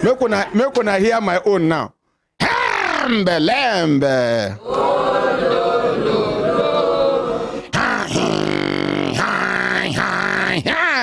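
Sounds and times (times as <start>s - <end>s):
man chanting: 7.7s - 11.0s.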